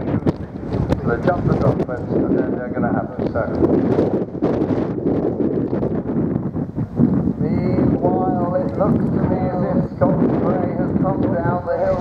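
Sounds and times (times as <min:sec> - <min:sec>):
wind buffeting the microphone: 0:00.0 - 0:12.0.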